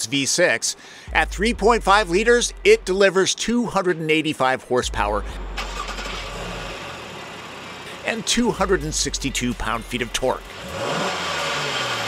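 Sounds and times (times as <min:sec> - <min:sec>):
car engine idling: 0:01.0 - 0:03.1, 0:04.8 - 0:12.0.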